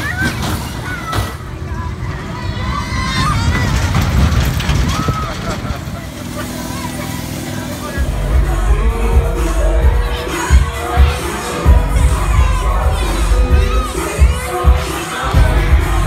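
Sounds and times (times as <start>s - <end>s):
children chattering: 0.0s - 16.0s
indistinct voices: 0.0s - 16.0s
ride machinery humming: 1.3s - 16.0s.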